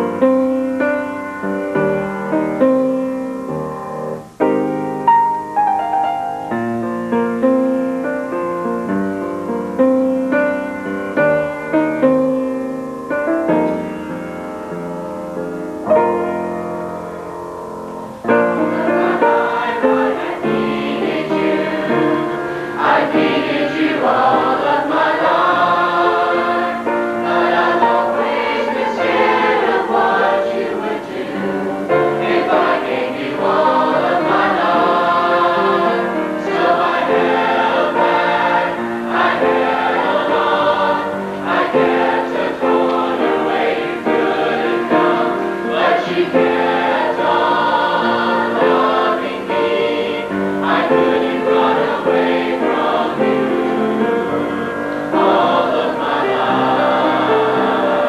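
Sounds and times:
youth choir singing: 18.1s - 58.0s.

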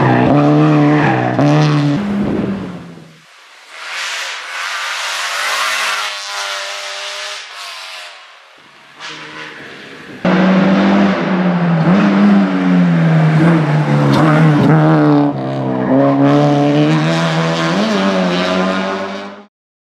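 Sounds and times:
race car engine at high revs: 0.0s - 19.5s.

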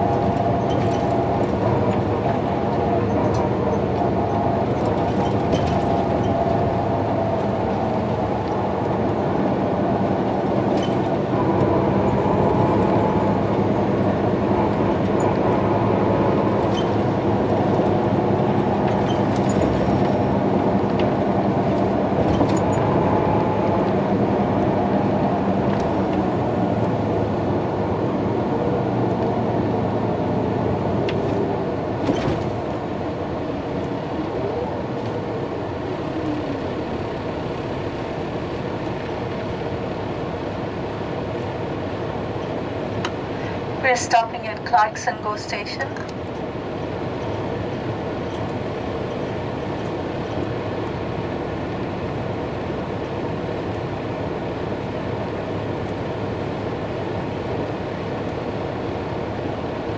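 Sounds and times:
coach engine: 0.0s - 59.9s.

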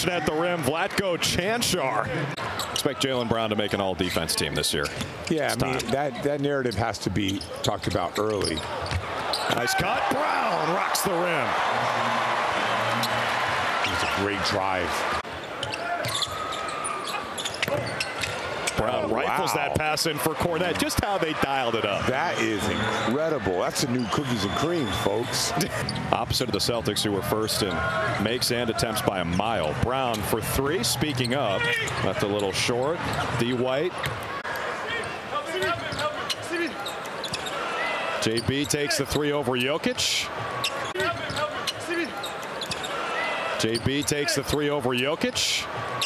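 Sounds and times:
crowd noise: 0.0s - 46.0s
sneaker squeaks: 2.5s - 3.0s, 4.8s - 9.6s, 15.3s - 18.8s, 25.6s - 26.1s, 35.6s - 38.7s, 40.6s - 44.1s.

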